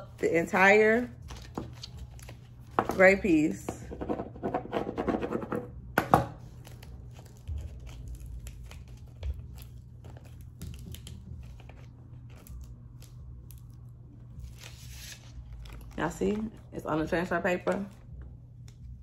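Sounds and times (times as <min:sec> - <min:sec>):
tape peeling crackle and rip: 0:01.2 - 0:02.6, 0:06.4 - 0:16.1.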